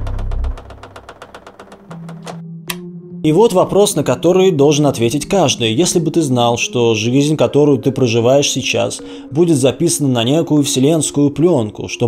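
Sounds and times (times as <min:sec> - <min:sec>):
low rumble: 0:00.0 - 0:01.6
rapid mechanical ticking: 0:00.0 - 0:02.4.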